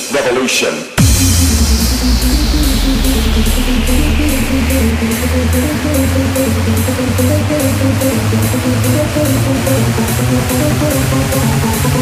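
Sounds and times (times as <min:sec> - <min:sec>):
hard trance electronic beat: 0:01.0 - 0:12.0.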